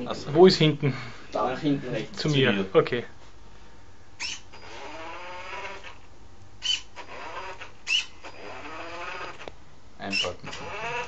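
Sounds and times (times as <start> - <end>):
electric motors whining: 4.2 - 9.5, 10.2 - 11.0.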